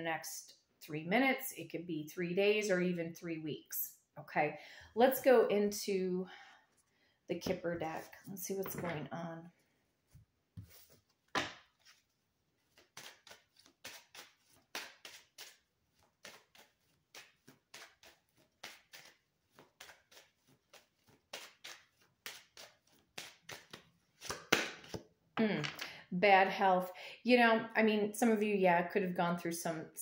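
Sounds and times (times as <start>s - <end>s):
cards being shuffled: 10.6s - 25.1s.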